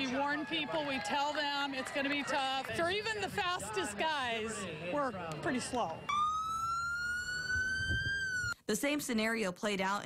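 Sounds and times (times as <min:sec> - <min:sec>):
siren wailing: 0:06.0 - 0:08.6.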